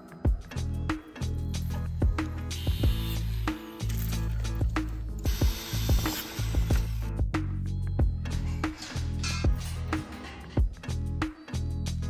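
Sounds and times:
background music: 0.0s - 12.0s
metal chain clicking and rattling: 8.3s - 10.6s.

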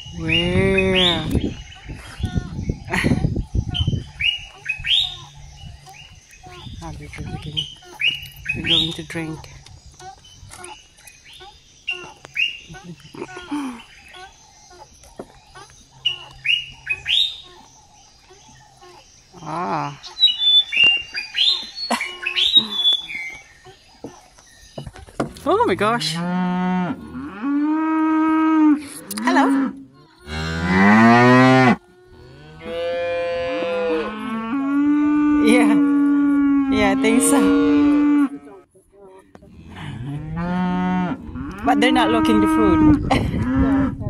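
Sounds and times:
birds chirping: 0.0s - 44.0s.

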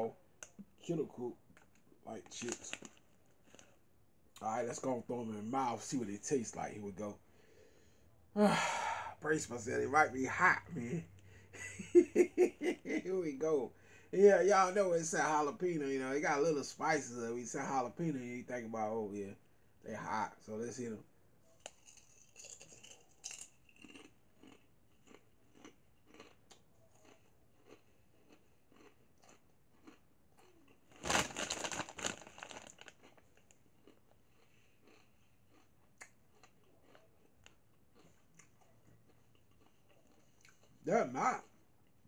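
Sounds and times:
person chewing crunchy chips: 21.5s - 40.8s
plastic bag rustling: 31.0s - 32.9s.

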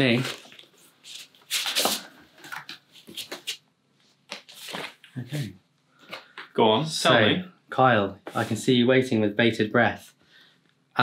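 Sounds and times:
paper envelope rustling: 4.3s - 5.1s.

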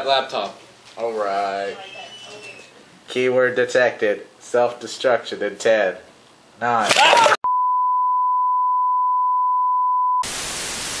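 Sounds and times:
electronic beep tone: 7.5s - 10.3s
tv static hiss: 10.2s - 11.0s.

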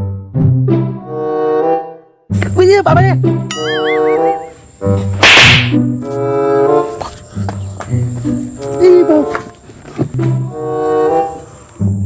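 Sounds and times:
sharp whip-like swish: 5.2s - 5.8s.

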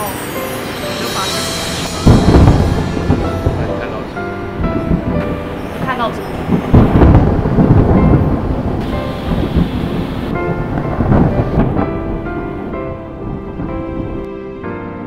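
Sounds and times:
rain: 0.0s - 14.3s
background music with sustained notes: 0.0s - 15.0s
thunder rumbles: 1.1s - 14.3s.

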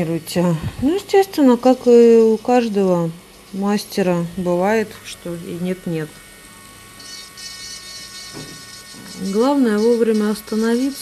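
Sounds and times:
manicure drill whining: 0.8s - 11.0s.

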